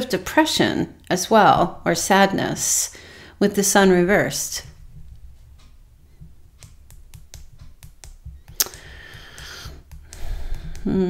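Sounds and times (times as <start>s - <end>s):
low steady hum: 0.0s - 11.0s
light irregular clicks and taps: 4.3s - 11.0s.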